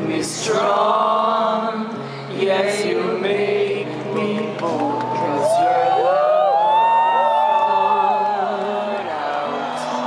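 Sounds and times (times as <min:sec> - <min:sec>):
slow piano accompaniment: 0:00.0 - 0:10.0
crowd whooping and cheering: 0:04.8 - 0:10.0.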